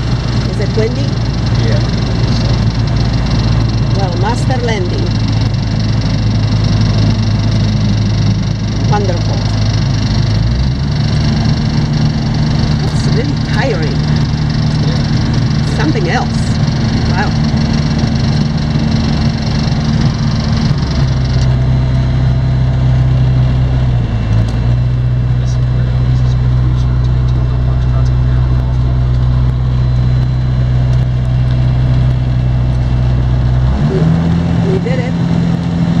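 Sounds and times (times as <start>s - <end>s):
light aircraft engine and propeller: 0.0s - 36.0s.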